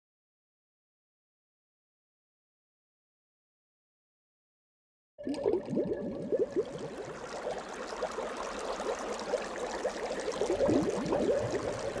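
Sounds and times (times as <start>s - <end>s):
water bubbles blooping: 5.2s - 12.0s.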